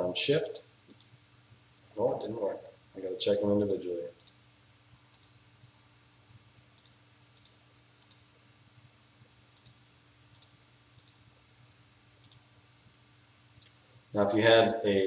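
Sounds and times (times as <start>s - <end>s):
computer mouse clicking: 0.9s - 1.2s, 3.6s - 4.4s, 5.1s - 5.4s, 6.8s - 8.3s, 9.5s - 11.2s, 12.2s - 12.5s.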